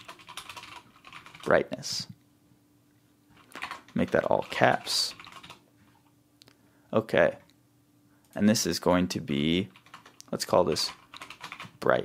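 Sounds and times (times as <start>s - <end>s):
keyboard keys clicking: 0.0s - 1.4s, 3.4s - 5.6s, 9.8s - 11.8s.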